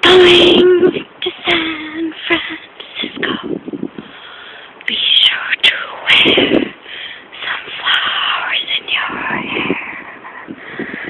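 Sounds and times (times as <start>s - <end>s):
woman whispering: 4.9s - 6.7s, 7.4s - 10.6s.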